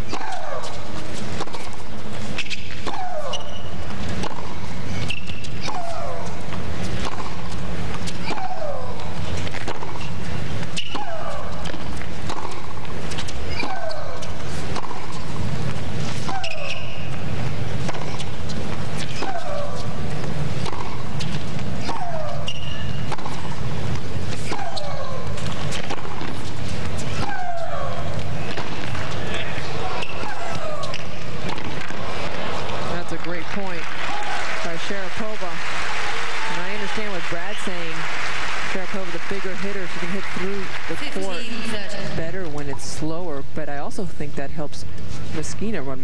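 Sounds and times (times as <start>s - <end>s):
racquets striking tennis ball: 0.0s - 42.7s
woman shrieking: 27.2s - 28.1s.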